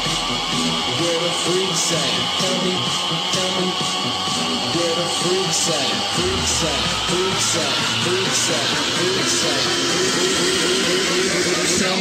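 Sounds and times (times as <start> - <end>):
electronic dance music build-up: 0.0 - 12.0.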